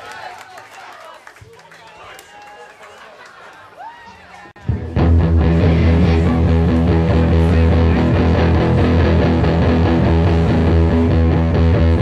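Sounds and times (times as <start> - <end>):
audience chattering: 0.0 - 12.0.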